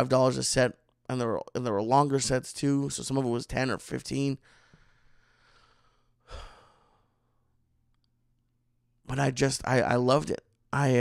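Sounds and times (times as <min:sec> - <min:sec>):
person sighing: 0:06.2 - 0:07.1.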